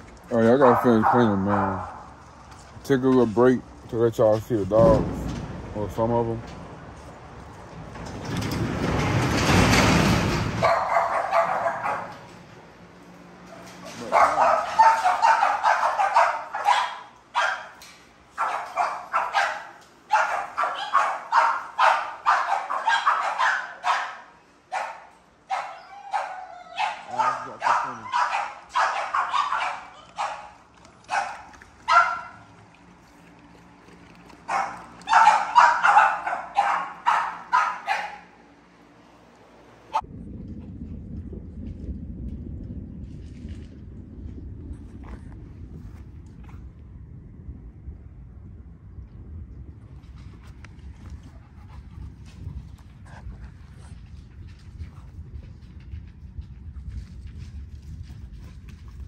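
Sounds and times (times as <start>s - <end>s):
dogs barking: 0.4s - 2.2s, 10.6s - 12.4s, 13.4s - 32.5s, 34.4s - 38.5s
steady low rumble: 38.6s - 59.0s.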